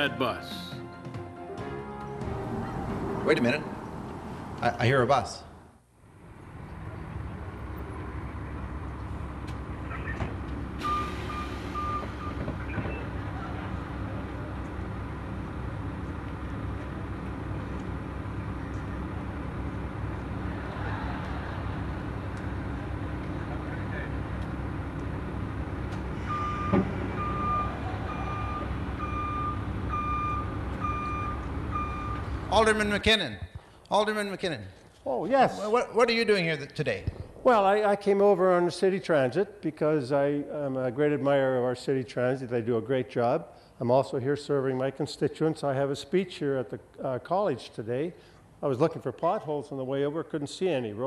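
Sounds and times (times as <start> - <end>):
bus engine running: 1.1 - 32.9
high electronic warning beeps: 10.8 - 13.1, 26.2 - 32.4.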